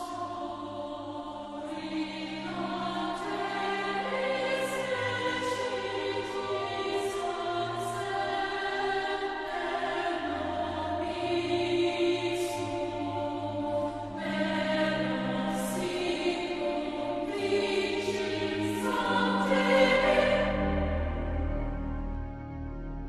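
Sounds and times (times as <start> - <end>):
choral music with held chords: 0.0 - 23.0.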